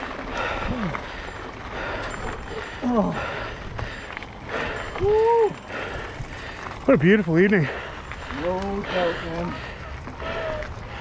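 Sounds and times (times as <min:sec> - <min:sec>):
bicycle tyres on gravel: 0:00.0 - 0:11.0.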